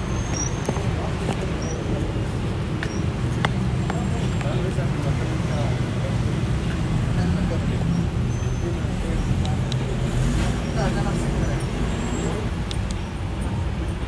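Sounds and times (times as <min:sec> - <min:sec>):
road traffic hum: 0:00.0 - 0:14.0
people talking: 0:00.6 - 0:14.0.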